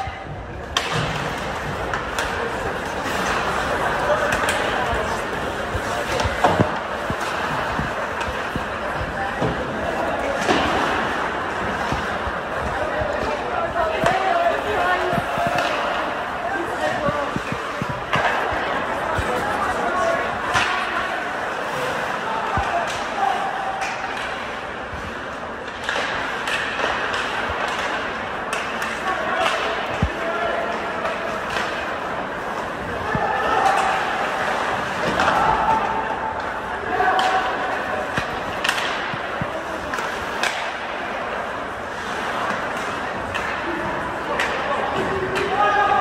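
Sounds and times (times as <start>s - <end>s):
hockey sticks and puck clacking: 0.0s - 46.0s.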